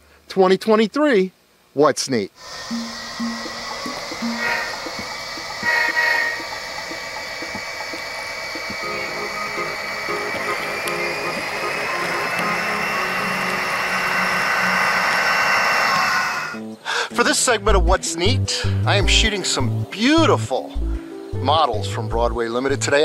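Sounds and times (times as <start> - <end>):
model trains running on track: 2.4 - 16.6
high whine: 2.4 - 16.8.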